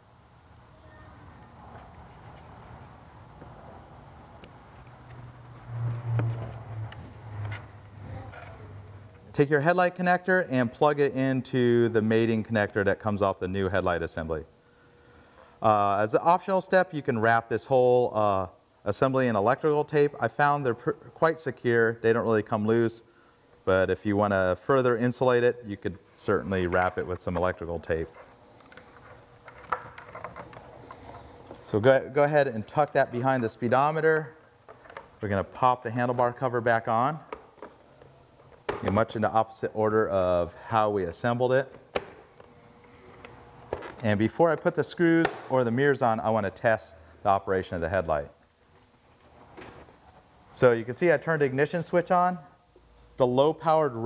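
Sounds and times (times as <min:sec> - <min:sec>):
low motor hum: 0:05.0 - 0:09.3
plastic parts handling noise: 0:26.8 - 0:31.8, 0:34.2 - 0:35.4, 0:41.8 - 0:45.4.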